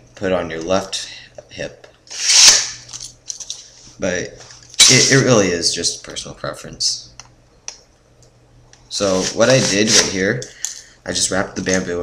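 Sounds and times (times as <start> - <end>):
sword scraping in sheath: 2.1 - 2.8.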